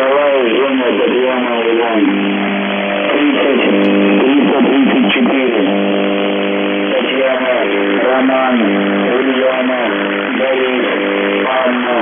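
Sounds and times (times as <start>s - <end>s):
radio static: 0.0s - 12.0s
steady low radio buzz: 0.0s - 12.0s.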